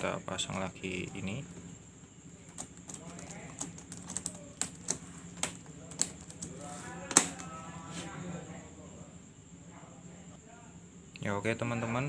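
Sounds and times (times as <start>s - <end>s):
laptop keyboard keys clicking: 2.4s - 7.4s.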